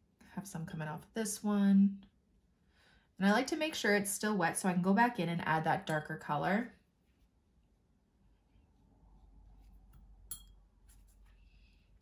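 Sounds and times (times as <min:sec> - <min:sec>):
paintbrush clinking on palette: 0:10.3 - 0:10.6.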